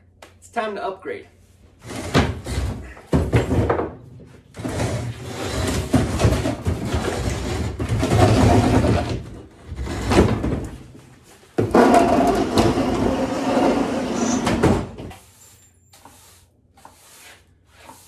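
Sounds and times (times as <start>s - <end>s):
cabinet scraping across concrete floor: 1.8s - 18.0s.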